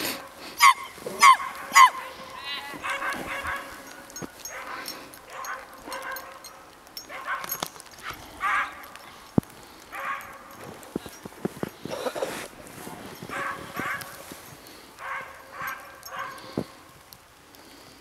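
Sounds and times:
dog barking: 0.6s - 9.0s, 9.9s - 10.6s, 13.2s - 14.2s, 15.0s - 16.6s.

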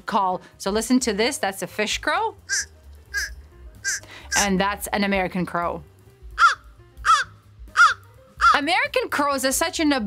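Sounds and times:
crow cawing: 2.5s - 4.5s, 6.4s - 8.6s.

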